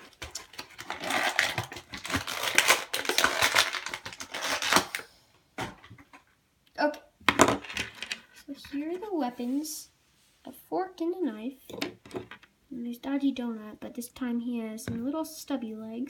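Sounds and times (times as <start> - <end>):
plastic packaging crinkling: 0.0 - 5.1.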